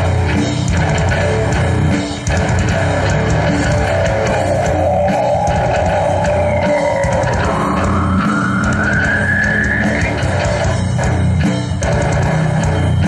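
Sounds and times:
metal band playing: 0.0 - 13.0.

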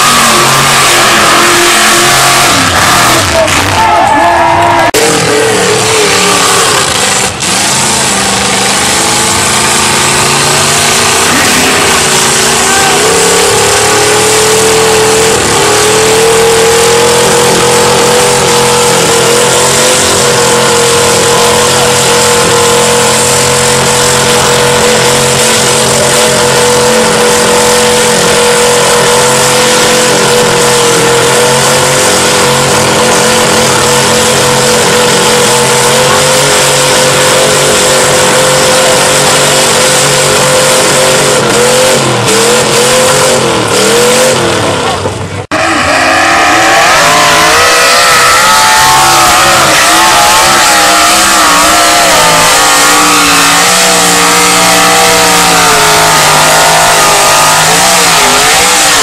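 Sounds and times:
diesel engine at high revs: 0.0 - 59.0.

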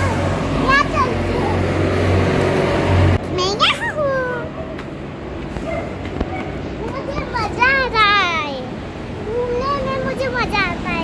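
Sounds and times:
street background noise: 0.0 - 11.0
girl calling out: 3.3 - 4.6.

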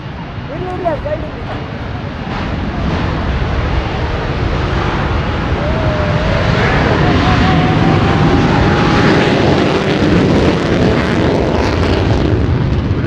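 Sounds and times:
jet engines roaring: 0.0 - 13.0.

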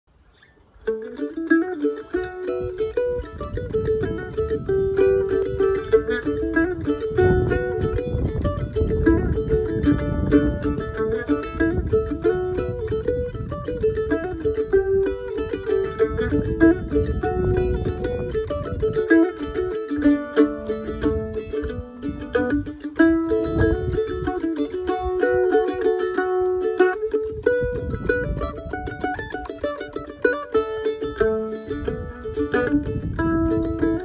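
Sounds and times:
mandolin playing fast fiddle tune: 0.6 - 34.0.

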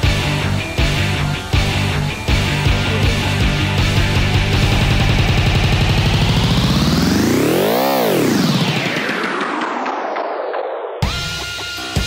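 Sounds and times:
synth sweep: 0.0 - 11.1
electronic music: 0.0 - 12.0.

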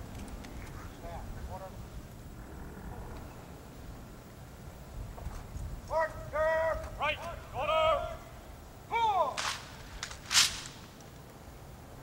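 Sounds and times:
person shouting drill command: 5.9 - 8.3, 8.9 - 9.4
short sharp noises: 9.0 - 11.0.

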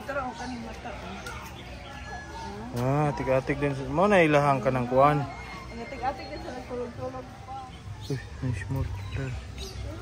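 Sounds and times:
faint background chatter: 0.0 - 10.0.

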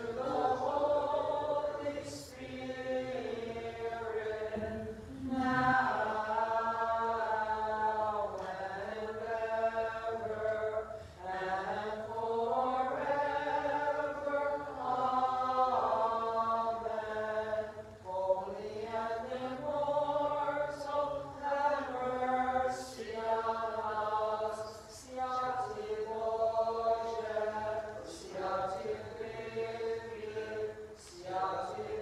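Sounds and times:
liturgical chant: 0.0 - 32.0.

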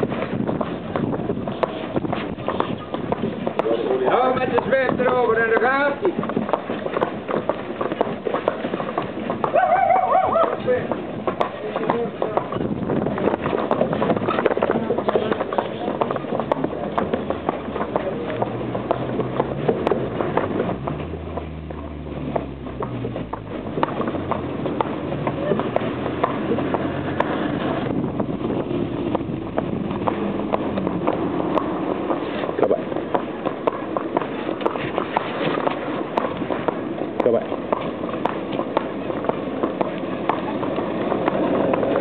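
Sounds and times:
horse hooves clip-clopping on pavement: 0.0 - 42.0.

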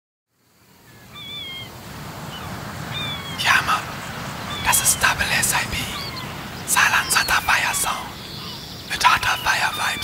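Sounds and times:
high thin gliding calls: 2.3 - 10.0.

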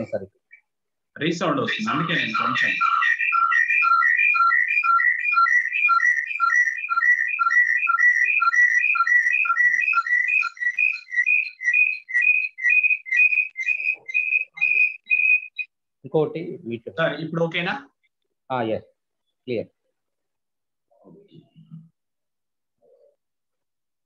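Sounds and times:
high whistle-like tune: 1.7 - 15.7.

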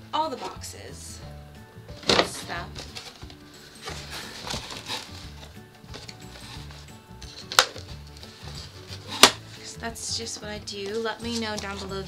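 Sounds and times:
faint music: 0.0 - 12.0
cardboard box scraping and rustling: 2.0 - 7.5, 8.2 - 9.6.

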